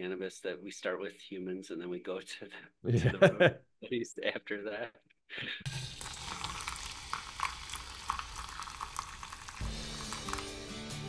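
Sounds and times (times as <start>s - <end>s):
person laughing: 2.9s - 3.6s
coffee pouring into a mug: 5.7s - 10.7s.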